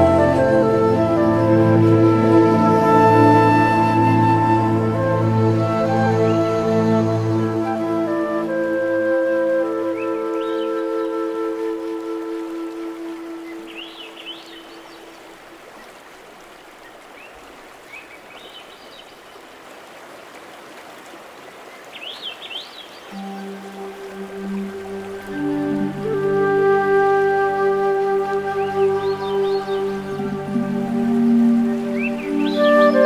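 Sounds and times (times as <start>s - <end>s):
soft new-age music: 0.0s - 15.5s, 23.0s - 33.0s
running water: 0.0s - 33.0s
bird chirps: 31.9s - 33.0s.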